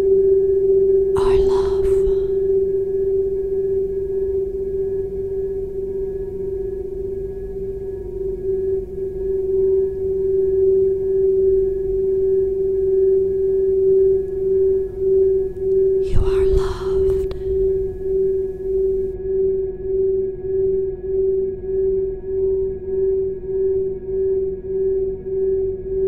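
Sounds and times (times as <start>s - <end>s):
crystal singing bowl tone: 0.0s - 16.3s, 17.0s - 26.0s.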